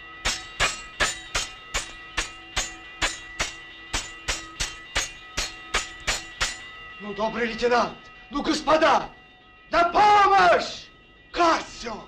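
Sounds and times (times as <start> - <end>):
rapid metallic clangs: 0.0 - 6.8.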